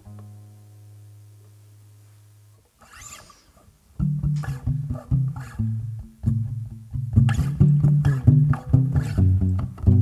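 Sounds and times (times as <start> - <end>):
acoustic guitar playing: 0.0 - 1.5, 4.0 - 10.0
faint scratchy noise: 0.0 - 10.0.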